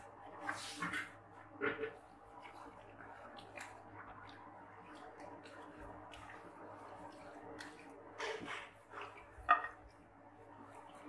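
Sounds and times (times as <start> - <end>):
hands kneading wet meat: 0.0 - 11.0.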